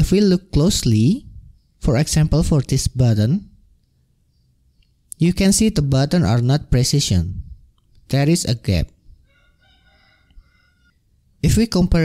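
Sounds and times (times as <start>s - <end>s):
faint rooster crow: 9.2s - 11.1s.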